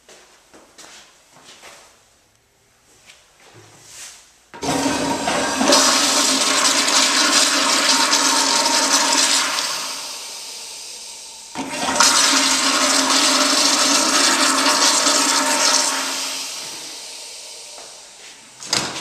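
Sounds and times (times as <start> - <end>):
toilet flushing: 4.6 - 19.0.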